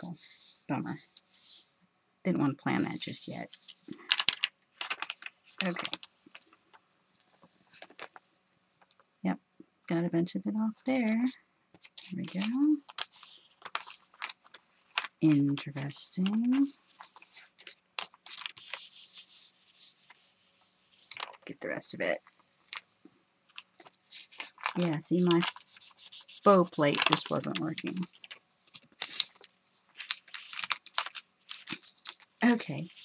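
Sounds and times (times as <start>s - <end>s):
thin paper crinkling: 2.8s - 6.6s, 7.4s - 8.2s, 11.0s - 21.5s, 23.5s - 33.0s.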